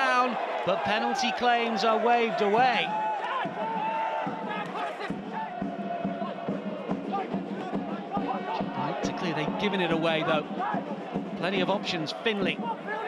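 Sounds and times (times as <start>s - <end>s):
football crowd chanting: 3.2s - 11.4s.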